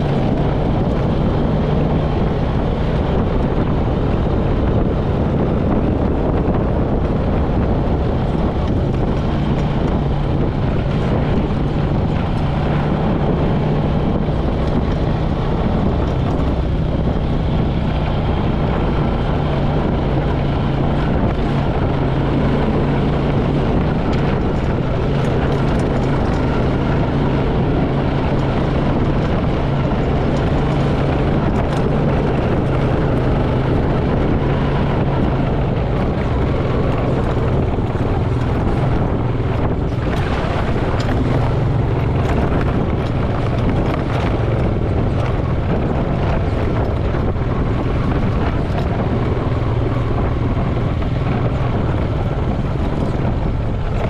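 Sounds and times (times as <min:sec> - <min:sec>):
off-road vehicle engine droning: 0:00.0 - 0:54.0
vehicle rattle: 0:00.0 - 0:54.0
wind noise: 0:00.0 - 0:54.0.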